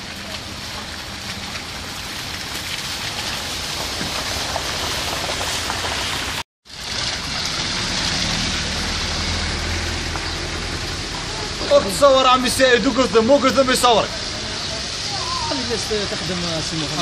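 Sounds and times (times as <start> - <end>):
slushy street hiss: 0.0 - 17.0.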